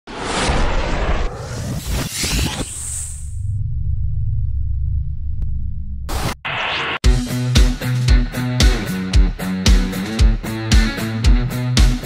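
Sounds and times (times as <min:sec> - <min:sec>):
whoosh: 0:00.1 - 0:04.6
deep rumble: 0:03.1 - 0:06.4.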